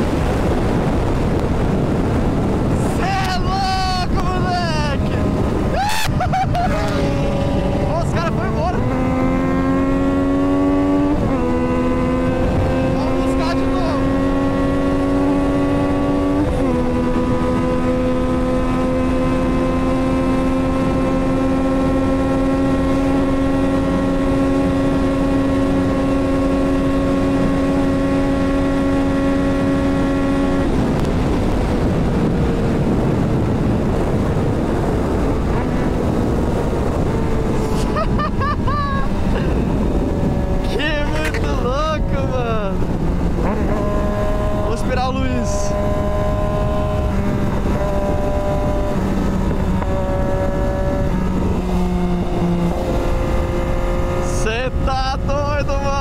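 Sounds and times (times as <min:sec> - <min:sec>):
motorcycle engine accelerating: 0:00.0 - 0:56.0
wind rushing over microphone: 0:00.0 - 0:56.0.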